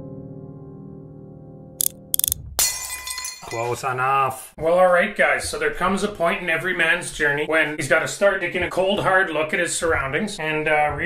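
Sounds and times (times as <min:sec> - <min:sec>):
soft piano music: 0:00.0 - 0:02.1.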